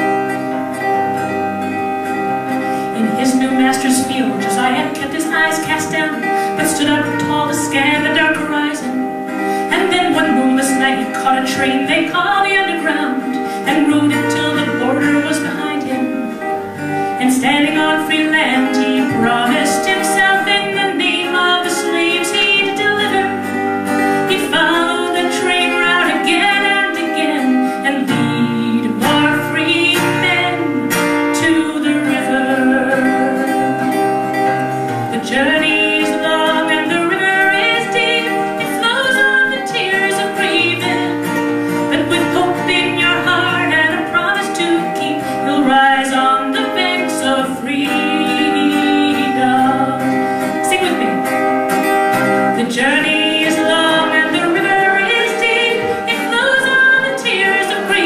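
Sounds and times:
acoustic guitar: 0.0 - 58.0
woman singing folk song: 0.0 - 58.0.

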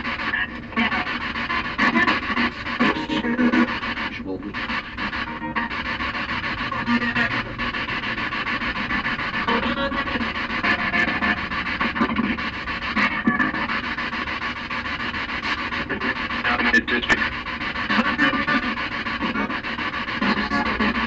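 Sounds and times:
hissing radio static: 0.0 - 21.0.

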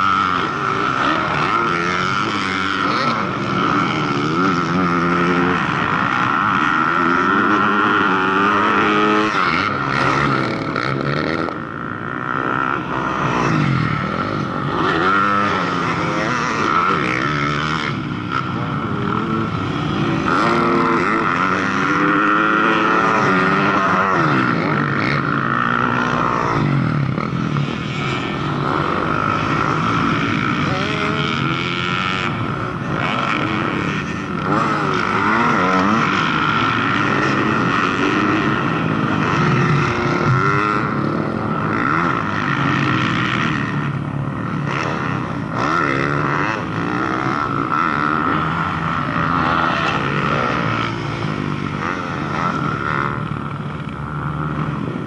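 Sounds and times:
dirt bike engines revving: 0.0 - 55.0
steady high whine: 0.0 - 55.0.

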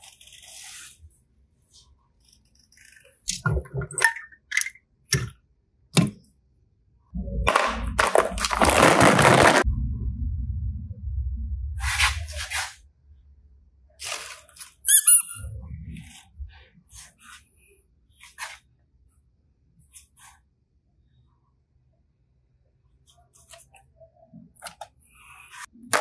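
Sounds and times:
plastic toys rustling and knocking: 7.5 - 9.6
high squeak: 14.8 - 15.5.

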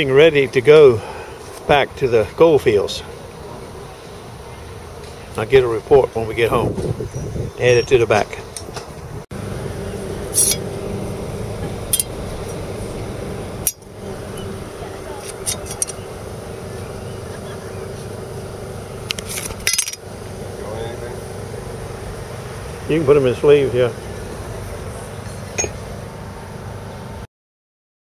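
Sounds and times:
steady background hum: 0.0 - 27.3.

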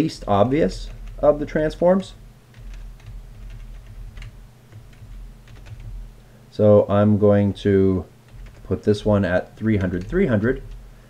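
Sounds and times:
computer keyboard typing: 0.2 - 1.8, 2.5 - 6.1, 8.3 - 10.8.

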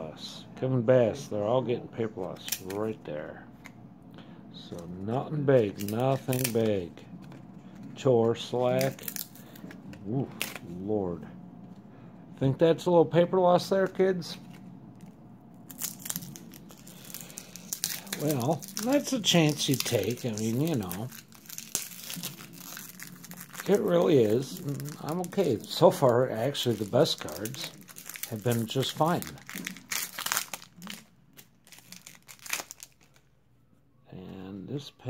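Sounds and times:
cards crinkling and tearing: 2.2 - 3.0, 4.7 - 10.8, 13.8 - 33.3.

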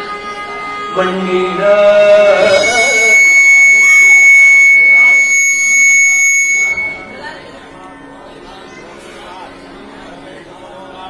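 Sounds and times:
faint voices: 0.0 - 11.0
microphone feedback whistle: 2.2 - 7.4.

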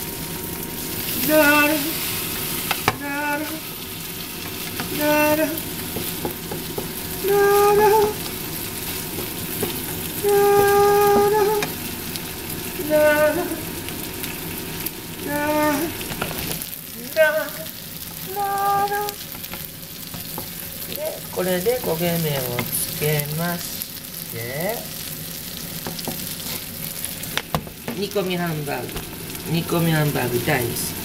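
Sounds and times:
patty sizzling in a frying pan: 0.0 - 31.0
person singing held notes: 10.2 - 11.7.

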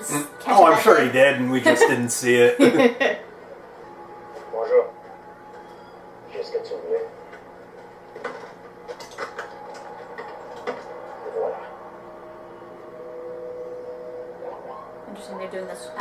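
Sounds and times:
tv soundtrack low hum: 0.0 - 16.0.

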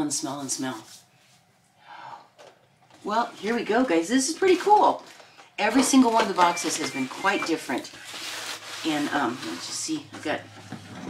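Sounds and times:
woman breathing softly: 1.8 - 2.4.

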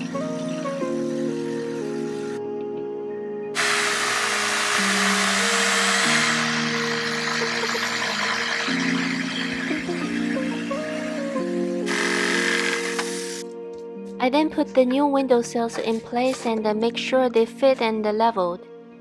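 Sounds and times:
background music: 0.0 - 19.0
jigsaw cutting wood: 3.6 - 10.8, 11.9 - 13.4.

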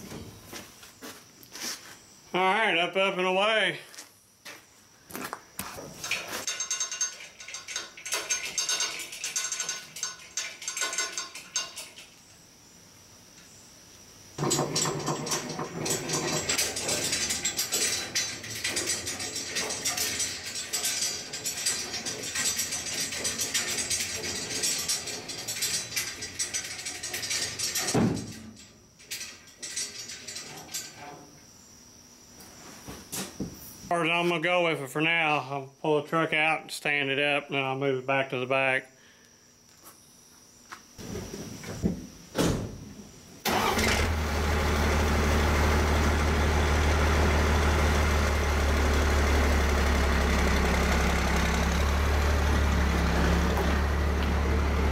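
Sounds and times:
chain links rattling through hoist: 6.0 - 12.2, 14.4 - 31.1.

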